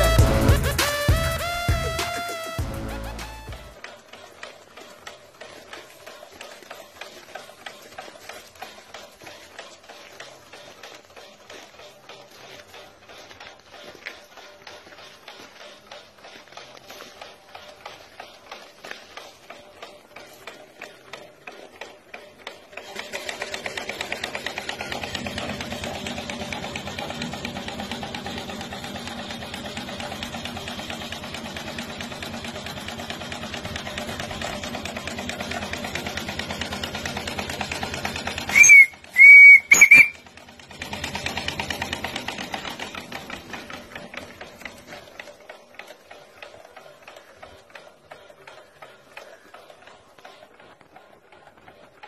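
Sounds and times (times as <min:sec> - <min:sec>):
steam whistle toots: 0:00.0 - 0:03.7, 0:38.5 - 0:40.2
small steam engine ticking: 0:00.0 - 0:52.0.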